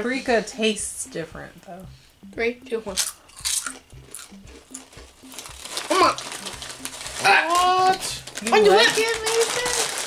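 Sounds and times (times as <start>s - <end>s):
soft background music: 0.0s - 10.0s
potato chips crunching: 2.9s - 10.0s.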